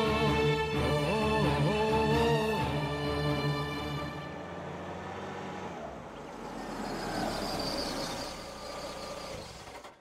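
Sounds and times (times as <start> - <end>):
tyres rolling on pavement: 4.4 - 10.0.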